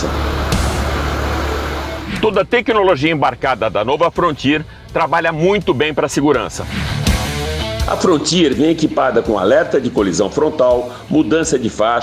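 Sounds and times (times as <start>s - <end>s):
engine and rushing water: 0.0s - 2.5s.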